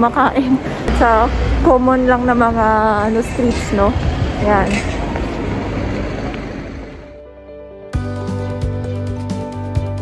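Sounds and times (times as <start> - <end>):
busy shopping street ambience: 0.0 - 10.0.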